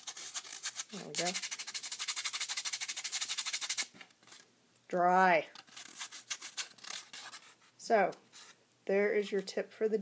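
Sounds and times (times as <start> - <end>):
scratchy rubbing on cardstock: 0.0 - 4.4, 5.7 - 8.6.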